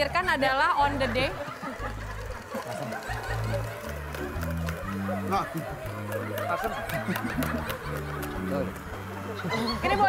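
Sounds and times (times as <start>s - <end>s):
audience laughing softly: 0.9s - 10.0s.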